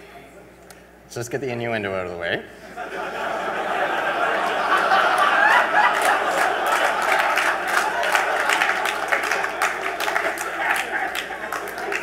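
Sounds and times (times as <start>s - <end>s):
audience laughing: 2.6s - 12.0s
crowd noise: 2.6s - 12.0s
audience clapping: 4.2s - 12.0s.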